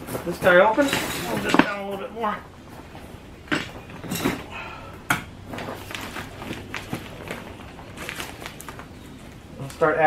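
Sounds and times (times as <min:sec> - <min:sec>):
plastic bag crinkling: 0:05.4 - 0:09.8.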